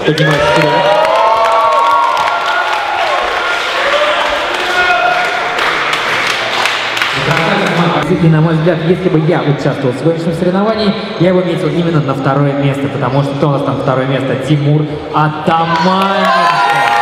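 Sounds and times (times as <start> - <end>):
crowd clapping and cheering: 0.0 - 8.1, 15.5 - 17.0
whoops and shouts: 0.2 - 5.3, 15.5 - 17.0.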